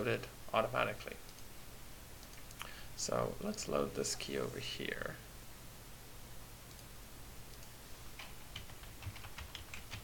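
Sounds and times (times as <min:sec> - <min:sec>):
computer keyboard typing: 0:07.5 - 0:10.0.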